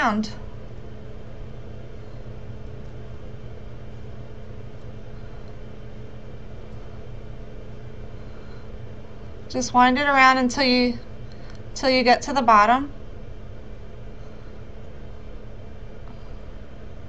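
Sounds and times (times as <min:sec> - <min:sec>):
room noise hum and hiss: 0:00.0 - 0:17.0.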